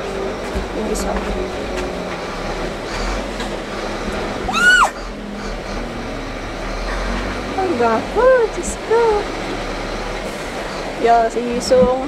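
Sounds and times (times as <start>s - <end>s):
steady background noise: 0.0s - 12.0s.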